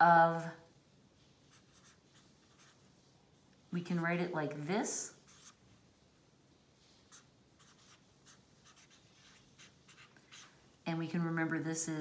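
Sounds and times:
felt-tip pen writing on paper: 7.1 - 10.5.

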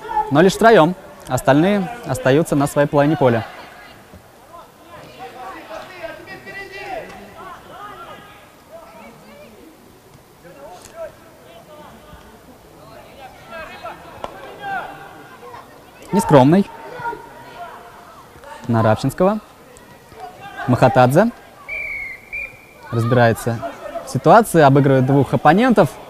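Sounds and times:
football players shouting: 0.0 - 9.8, 10.4 - 26.0.

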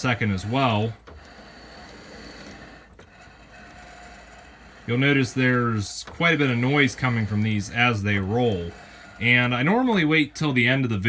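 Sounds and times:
model train car rolling on track: 0.0 - 11.0.

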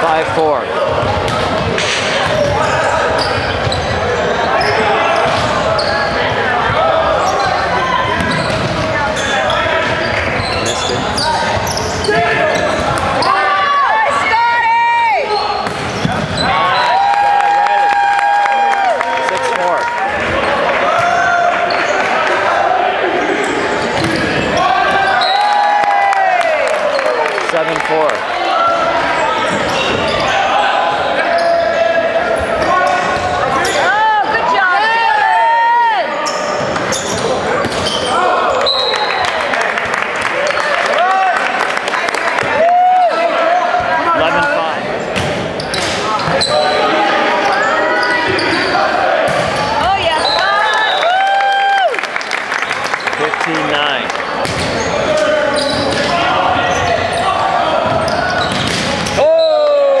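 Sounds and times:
sneakers squeaking on floor: 0.9 - 13.5, 15.3 - 16.9, 23.2 - 25.6, 29.2 - 30.5, 31.2 - 34.0, 36.2 - 39.2, 43.7 - 50.6, 54.4 - 59.6.

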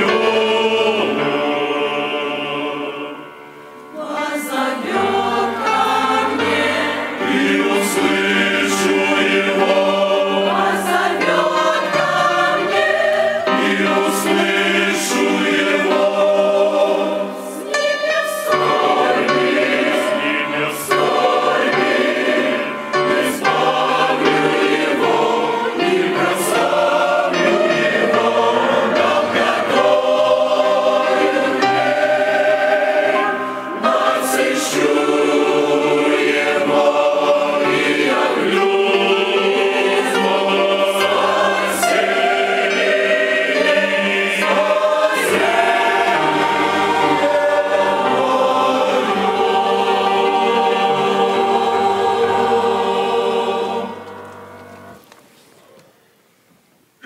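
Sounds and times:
mixed choir singing: 0.0 - 54.5.

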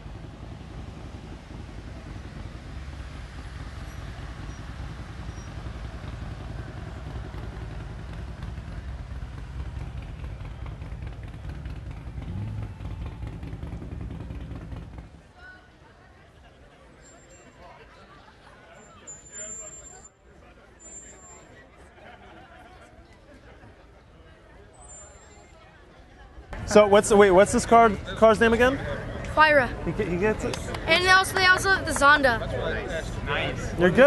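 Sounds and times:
car engine deep rumble: 0.0 - 15.3
people's voices: 15.3 - 34.0.

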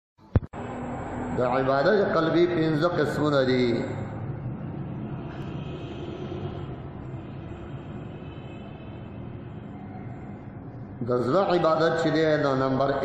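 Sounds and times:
steady rumbling background noise: 0.3 - 13.0.

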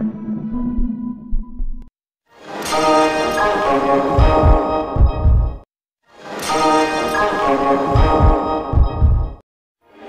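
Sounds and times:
held synthesizer chords: 2.4 - 5.6, 6.3 - 9.4
deep low thumps: 4.2 - 5.7, 8.0 - 9.4.

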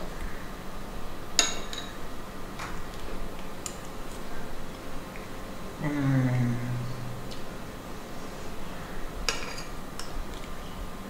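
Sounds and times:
metal spoon clinking on dishes: 9.3 - 10.1.

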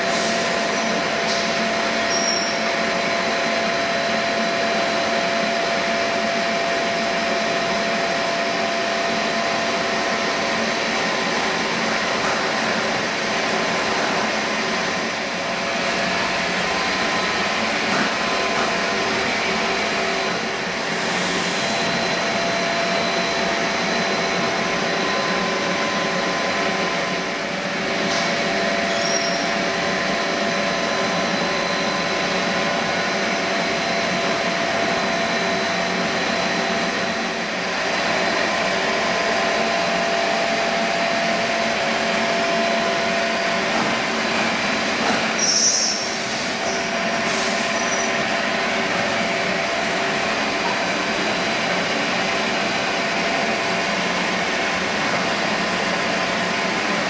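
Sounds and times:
machinery humming and hissing: 0.0 - 57.0
short high-pitched squeal: 2.0 - 2.7, 28.8 - 29.6, 45.4 - 48.2.

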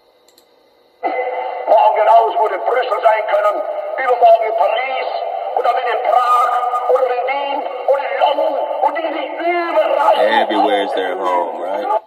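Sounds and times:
man giving a speech: 10.1 - 12.0.

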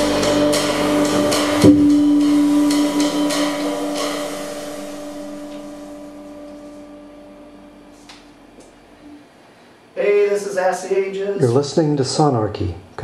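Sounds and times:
cymbals ringing: 0.0 - 9.0.

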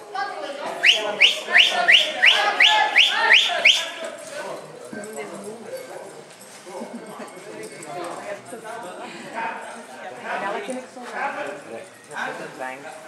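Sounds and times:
murmur of voices in hall: 0.0 - 13.0.

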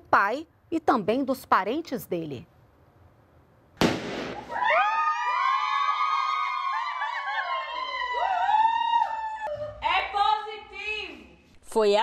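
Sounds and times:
confetti popper pop: 3.8 - 4.5
people shrieking and cheering: 4.4 - 9.7.

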